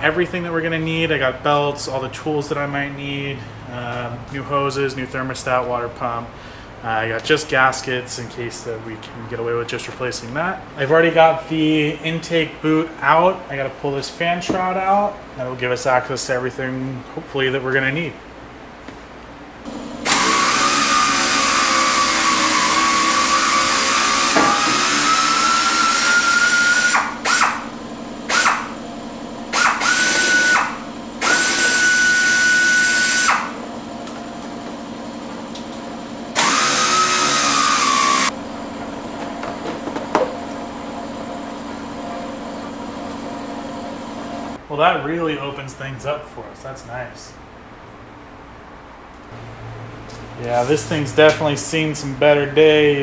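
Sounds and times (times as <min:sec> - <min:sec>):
pneumatic tool hissing whine: 0:19.7 - 0:27.7, 0:28.3 - 0:28.8, 0:29.5 - 0:33.6, 0:36.3 - 0:38.3.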